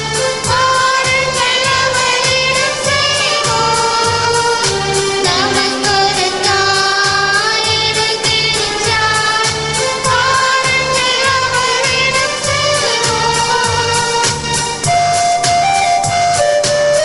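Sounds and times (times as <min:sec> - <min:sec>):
instrumental accompaniment: 0:00.0 - 0:17.0
person singing: 0:00.5 - 0:14.3.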